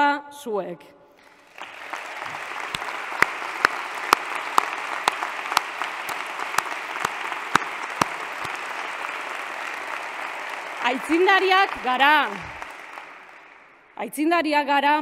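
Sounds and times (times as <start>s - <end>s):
audience applause: 1.2s - 14.0s
single nearby claps: 1.6s - 10.8s.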